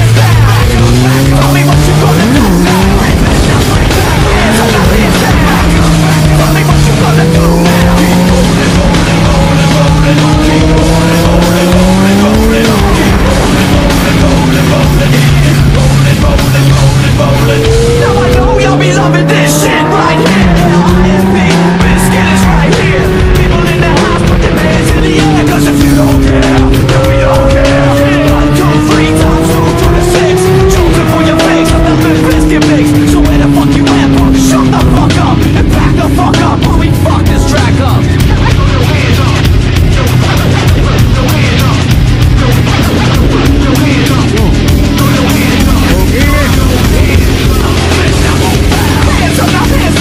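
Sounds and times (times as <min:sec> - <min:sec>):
motorcycle engine running: 0:00.0 - 0:50.0
music playing: 0:00.0 - 0:50.0.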